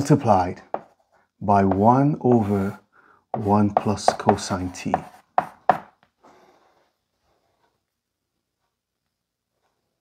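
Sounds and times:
chalk striking a blackboard: 0.0s - 6.0s.

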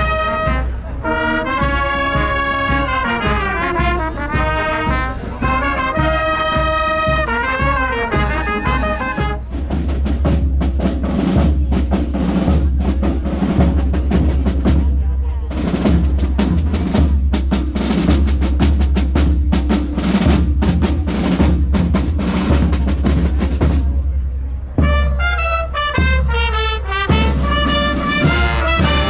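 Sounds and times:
snare and bass drums playing: 1.4s - 24.1s, 24.8s - 29.0s.

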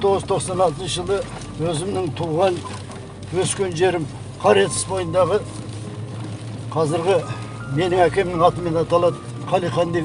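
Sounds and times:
vehicle cabin hum: 0.0s - 10.0s.

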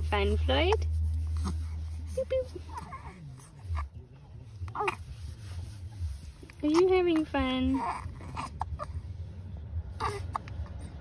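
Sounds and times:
low steady hum: 0.0s - 11.0s
baby cooing and grunting: 2.7s - 3.9s, 4.7s - 5.1s, 7.6s - 9.1s, 10.0s - 10.8s.

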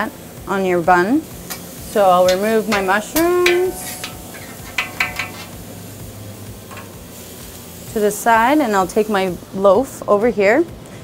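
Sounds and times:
background hiss and hum: 0.0s - 11.0s
metal spatula scraping griddle: 1.4s - 7.6s.

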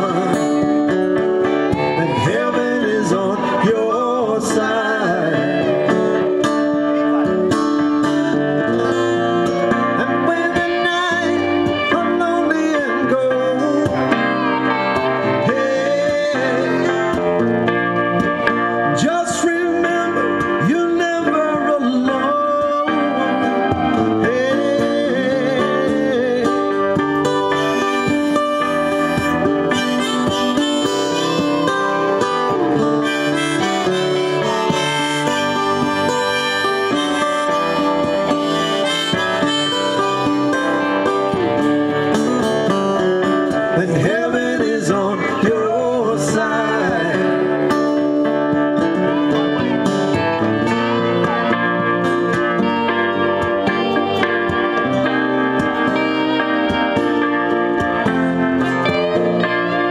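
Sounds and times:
electric lead guitar bending notes: 0.0s - 59.9s
keyboard: 0.0s - 59.9s
strummed acoustic guitar: 0.0s - 59.9s.

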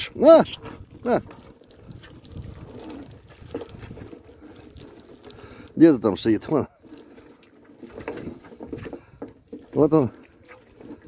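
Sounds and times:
water pouring and splashing: 0.0s - 11.0s.

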